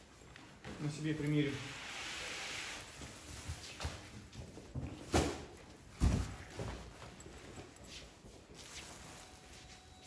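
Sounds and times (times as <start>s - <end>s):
fabric rustling: 5.9s - 10.0s.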